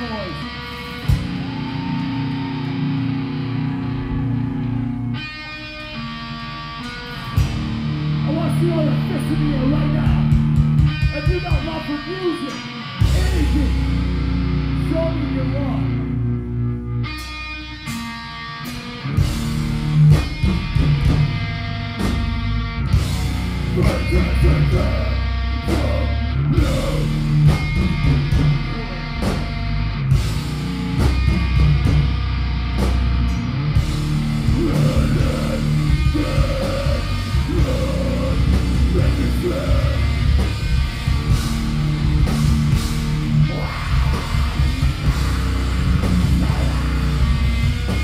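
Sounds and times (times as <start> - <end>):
bass and drums: 0.0 - 48.0
distorted electric guitars: 0.0 - 48.0.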